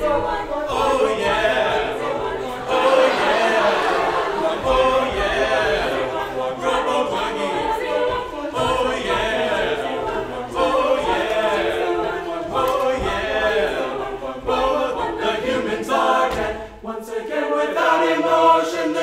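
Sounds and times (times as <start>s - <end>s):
group singing a cappella: 0.0s - 19.0s.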